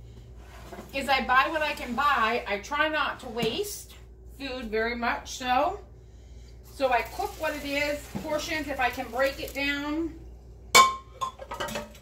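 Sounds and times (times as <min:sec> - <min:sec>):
kitchenware clink: 0:10.8 - 0:12.0.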